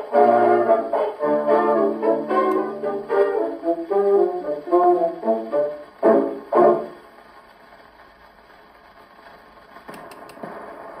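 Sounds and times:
record surface hiss: 0.0 - 11.0
record clicks: 9.8 - 10.6.

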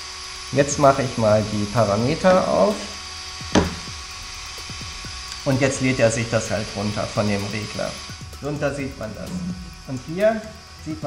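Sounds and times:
short knock: 3.5 - 3.9.

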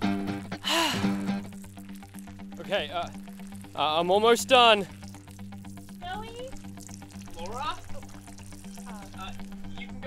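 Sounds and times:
background music held notes: 0.0 - 10.0
man urinating on ground: 0.3 - 9.7.

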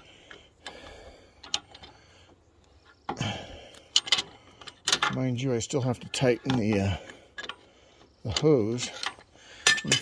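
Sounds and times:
filter wrench clicks and metal taps: 1.4 - 2.0, 3.8 - 5.4, 6.4 - 7.6, 8.3 - 10.0.

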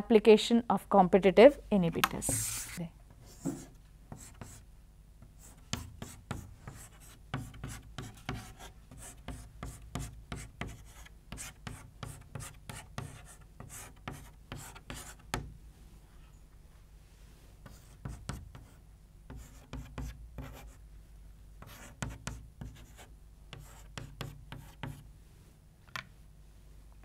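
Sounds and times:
chalk writing on chalkboard: 2.2 - 4.6, 5.4 - 15.4, 17.6 - 20.8, 21.6 - 25.0.

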